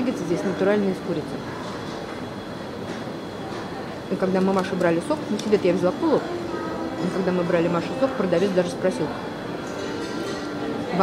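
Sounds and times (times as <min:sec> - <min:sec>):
food court background hum: 0:00.0 - 0:11.0.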